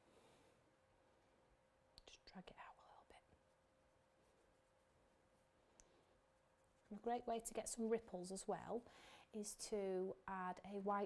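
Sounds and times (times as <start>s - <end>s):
faint steady hum: 0.0s - 11.0s
faint whispered speech: 2.0s - 3.3s.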